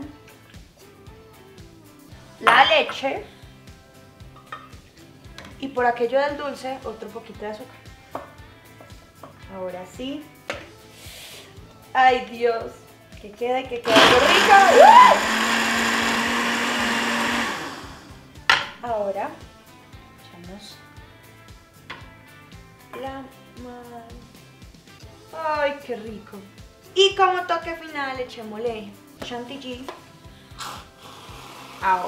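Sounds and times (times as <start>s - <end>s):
aerosol can hiss: 10.8s - 11.6s, 30.5s - 32.0s
blender motor running: 13.8s - 18.2s, 30.6s - 32.0s
blender motor winding down: 13.8s - 18.2s, 30.6s - 32.0s.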